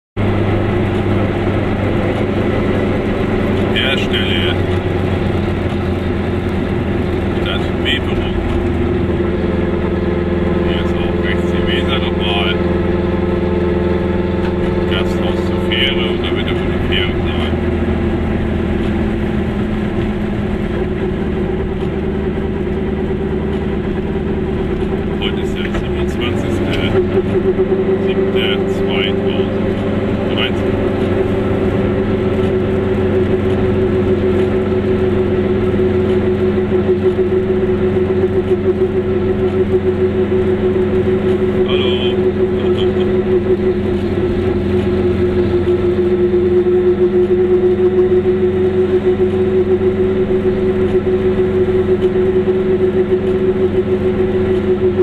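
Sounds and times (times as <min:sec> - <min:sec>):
car engine and road noise: 0:00.2 - 0:55.0.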